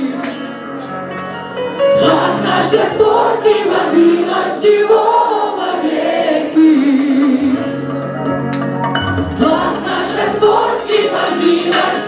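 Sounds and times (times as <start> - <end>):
held backing chords: 0.0 - 12.0
group singing worship song: 1.9 - 7.9, 9.3 - 12.0.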